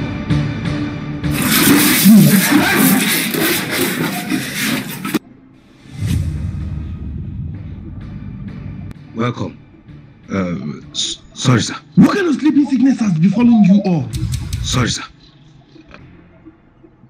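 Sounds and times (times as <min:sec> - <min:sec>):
music with steady beat: 0:14.1 - 0:15.0.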